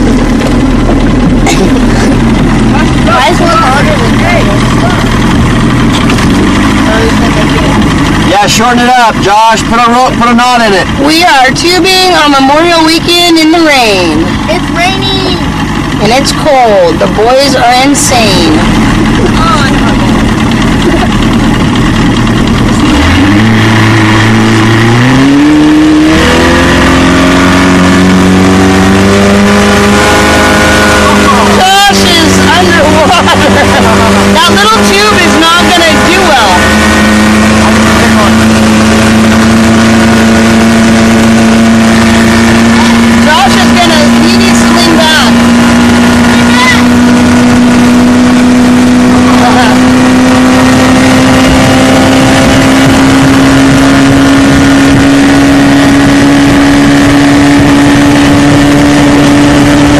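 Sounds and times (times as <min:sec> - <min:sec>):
outboard motor revving: 0:00.0 - 0:59.9
water rushing: 0:00.0 - 0:59.9
wind: 0:00.0 - 0:59.9.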